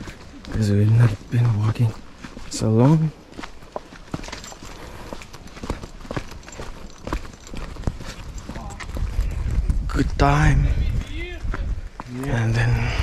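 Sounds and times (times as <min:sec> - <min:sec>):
footsteps on leafy dirt trail: 0:00.0 - 0:13.0.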